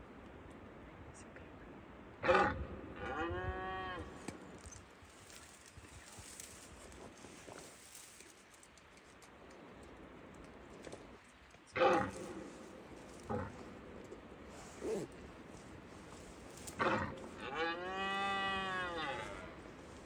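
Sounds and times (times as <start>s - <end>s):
red deer stag roaring: 13.1s - 13.7s, 16.5s - 20.0s.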